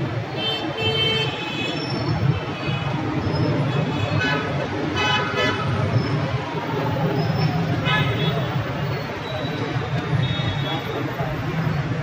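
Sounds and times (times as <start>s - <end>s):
low street rumble: 1.8s - 12.0s.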